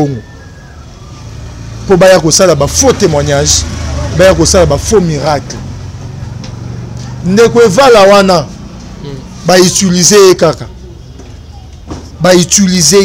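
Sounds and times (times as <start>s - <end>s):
road traffic rumble: 0.0s - 13.0s
man talking: 1.9s - 5.6s, 7.2s - 10.7s, 12.2s - 13.0s.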